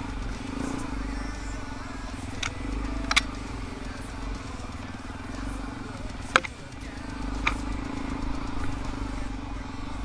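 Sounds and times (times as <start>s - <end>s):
dirt bike engine low revs: 0.0s - 10.0s.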